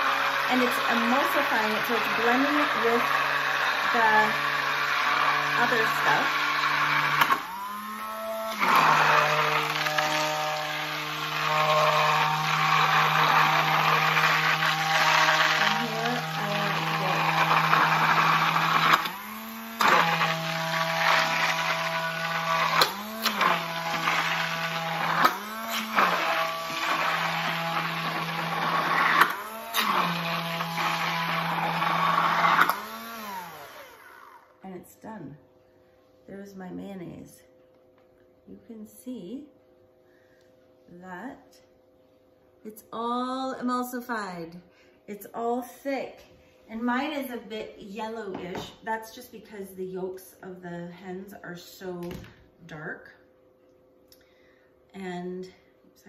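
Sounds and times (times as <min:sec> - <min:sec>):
stick blender motor running: 0:00.0 - 0:34.6.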